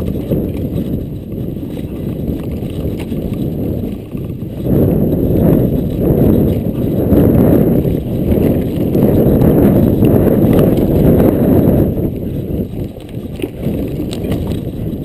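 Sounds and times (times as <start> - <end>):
bike rattling over rough ground: 0.0 - 15.0
wind buffeting microphone: 0.0 - 15.0.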